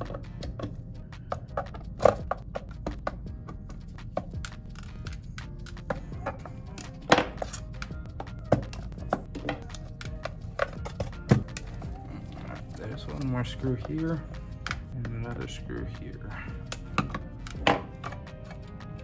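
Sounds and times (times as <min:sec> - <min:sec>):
soft background music: 0:00.0 - 0:19.0.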